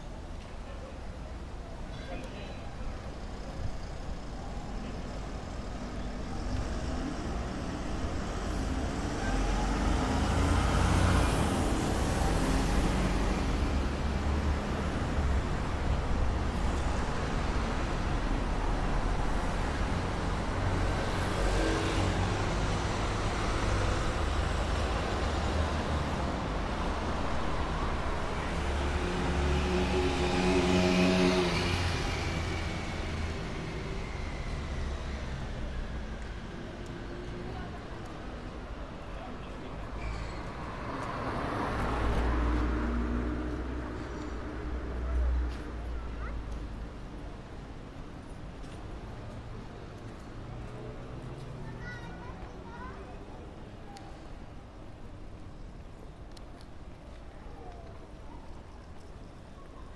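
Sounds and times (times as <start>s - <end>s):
low traffic rumble: 0.0s - 59.9s
vehicles passing by: 0.0s - 59.9s.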